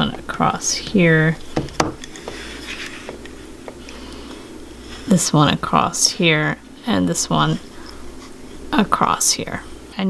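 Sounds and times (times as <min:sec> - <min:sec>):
wires rubbing on wooden mandrel: 0:00.0 - 0:09.7
low steady hum: 0:00.0 - 0:10.0.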